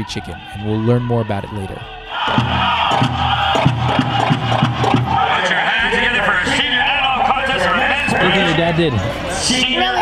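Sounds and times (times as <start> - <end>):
high-pitched group singing: 1.9 - 8.4
large drum steady beat: 2.3 - 6.0.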